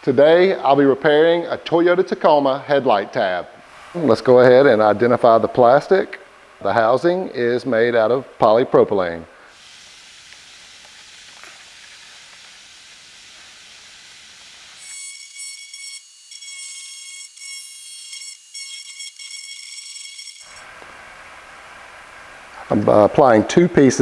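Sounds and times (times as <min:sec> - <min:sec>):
faint steady hiss: 0:00.0 - 0:14.9, 0:20.5 - 0:24.0
die grinder whining: 0:14.0 - 0:20.7.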